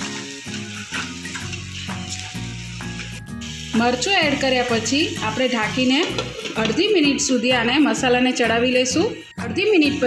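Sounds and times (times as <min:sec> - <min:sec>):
spoon stirring in metal pan: 0:00.0 - 0:03.2, 0:04.4 - 0:07.2
paste sizzling in hot oil: 0:00.0 - 0:08.0, 0:09.6 - 0:10.0
background music with held notes: 0:00.0 - 0:10.0.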